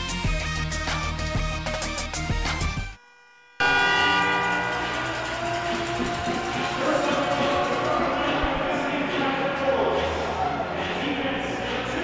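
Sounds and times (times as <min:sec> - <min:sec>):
arena horn chord: 0:03.0 - 0:08.9.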